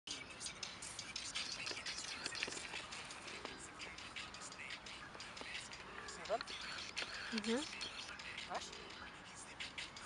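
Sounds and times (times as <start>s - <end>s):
person whispering: 5.8s - 9.2s.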